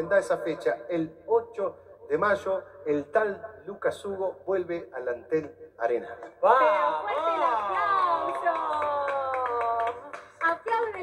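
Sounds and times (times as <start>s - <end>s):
hand claps: 7.9s - 11.0s.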